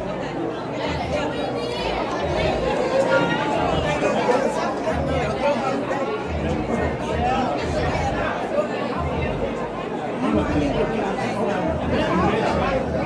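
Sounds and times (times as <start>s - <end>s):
crowd chatter: 0.0s - 13.0s.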